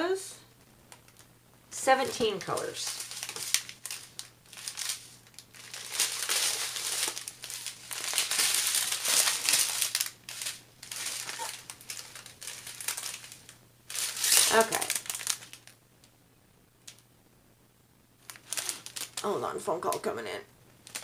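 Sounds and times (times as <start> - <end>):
plastic bags crinkling: 2.0 - 15.8, 18.2 - 20.1.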